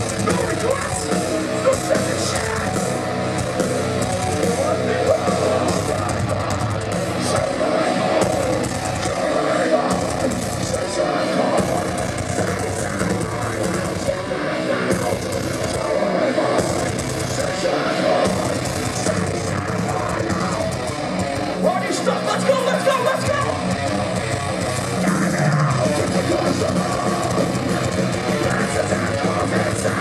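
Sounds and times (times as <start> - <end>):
heavy metal band playing live: 0.0 - 30.0.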